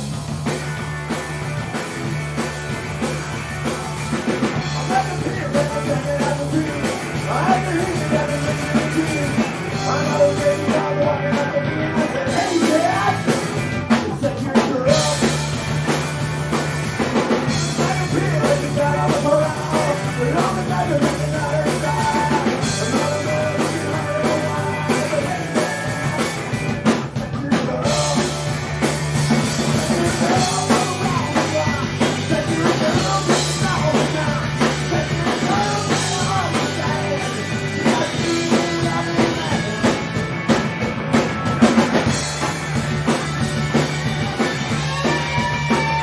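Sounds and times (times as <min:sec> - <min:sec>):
bass guitar: 0:00.0 - 0:46.0
distorted electric guitar: 0:00.0 - 0:46.0
drum kit: 0:00.0 - 0:46.0
man singing: 0:04.6 - 0:16.0, 0:17.1 - 0:40.6, 0:43.8 - 0:46.0.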